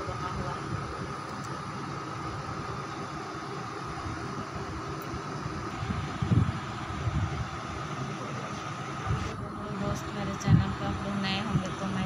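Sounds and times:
background hum and hiss: 0:00.0 - 0:12.0
mid-pitched drone: 0:00.0 - 0:12.0.

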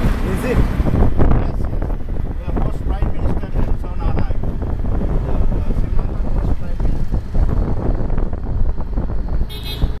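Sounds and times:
auto rickshaw engine: 0:00.0 - 0:10.0
road rumble: 0:00.0 - 0:10.0
wind on microphone: 0:00.0 - 0:10.0
short horn beep: 0:09.5 - 0:10.0.

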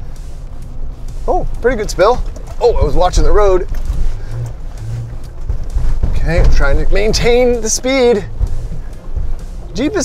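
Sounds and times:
low engine drone: 0:00.0 - 0:10.0
tyres rumbling over dirt bumps: 0:00.0 - 0:10.0.

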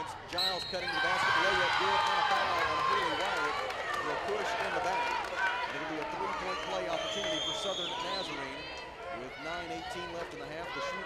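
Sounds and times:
players and crowd voices: 0:00.0 - 0:11.0.

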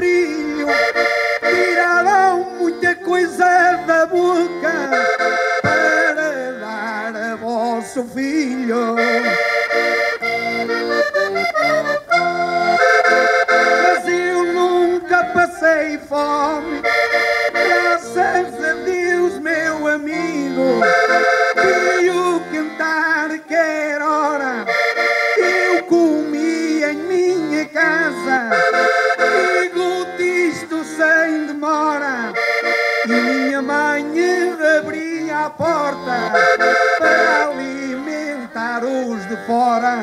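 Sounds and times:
accordion playing folk tune: 0:00.0 - 0:40.0.

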